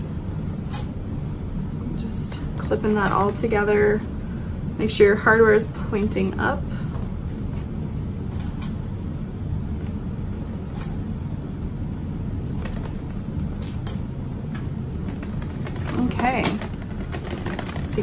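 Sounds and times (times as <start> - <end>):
steady low hum: 0.0 - 18.0
metal hardware clinking: 15.0 - 18.0.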